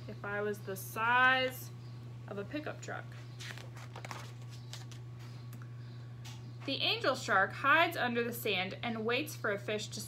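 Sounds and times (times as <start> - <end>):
steady low hum: 0.0 - 10.0
book pages turning: 3.3 - 5.4.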